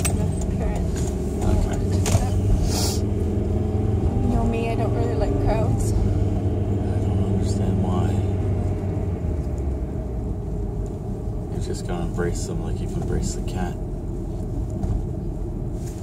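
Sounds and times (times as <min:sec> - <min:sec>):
people talking: 0:00.0 - 0:02.8, 0:04.3 - 0:05.9, 0:11.6 - 0:13.8
car engine and road noise: 0:00.0 - 0:16.0.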